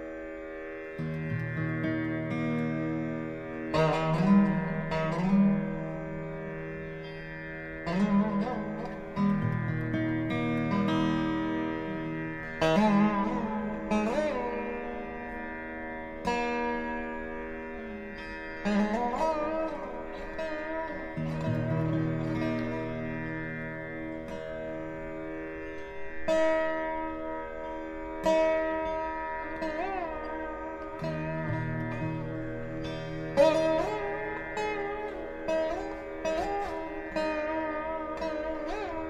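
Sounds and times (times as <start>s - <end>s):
plucked string instrument: 0.0s - 39.0s
steady drone: 0.0s - 39.0s.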